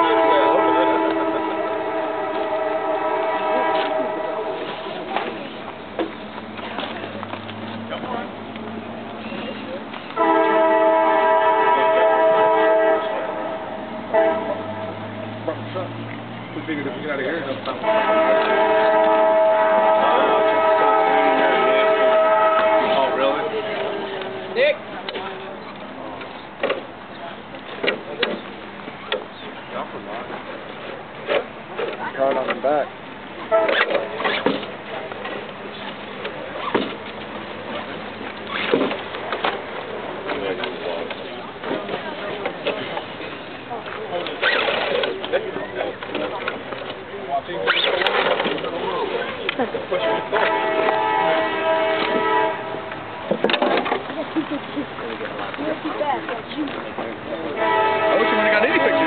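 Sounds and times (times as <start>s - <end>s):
train horn blast: 0.0s - 5.3s, 10.2s - 15.7s, 17.6s - 25.5s, 33.4s - 34.4s, 49.9s - 53.3s, 57.5s - 59.0s
steady outdoor hiss: 0.0s - 59.0s.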